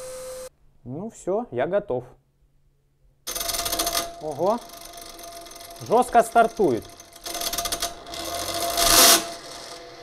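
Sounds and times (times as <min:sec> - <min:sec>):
turbine whine: 0:00.0 - 0:00.5
electric starter motor rattling buzz: 0:03.3 - 0:10.0.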